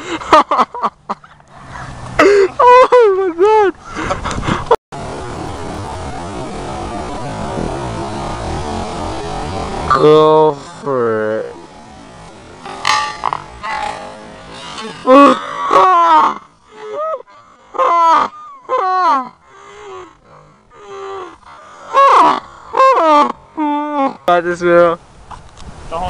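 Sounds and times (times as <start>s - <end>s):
brief noisy burst: 5.0s - 7.7s.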